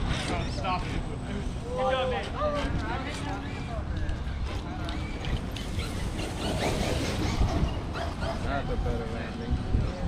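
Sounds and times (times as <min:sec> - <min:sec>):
wind rumbling on microphone: 0:02.4 - 0:10.0.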